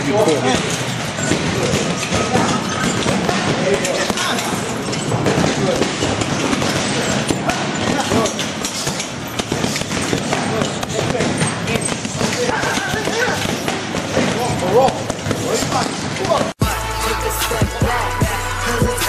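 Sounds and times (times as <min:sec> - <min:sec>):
people talking: 0:00.0 - 0:08.5, 0:10.1 - 0:16.5
boxing gloves punching heavy bag: 0:00.0 - 0:16.7.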